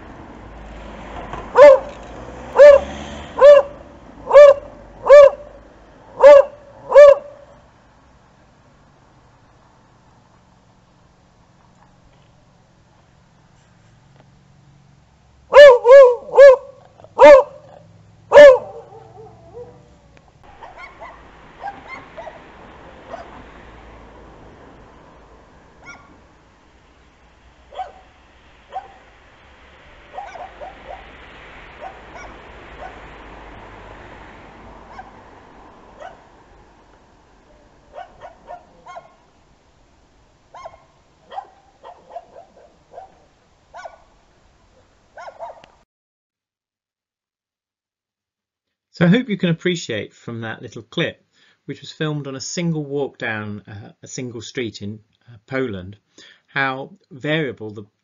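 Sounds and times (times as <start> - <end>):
dogs barking: 1.5 - 7.5, 15.5 - 23.5, 25.8 - 26.2, 27.7 - 29.1, 30.1 - 33.1, 34.8 - 35.2, 35.9 - 36.3, 37.6 - 39.3, 40.5 - 44.2, 45.1 - 45.8.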